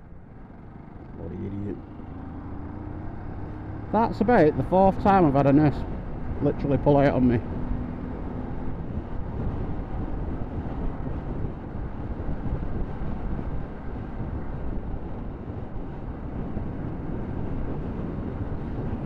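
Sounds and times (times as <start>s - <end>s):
motorcycle engine running: 0.0s - 19.0s
wind rushing on microphone: 1.2s - 19.0s.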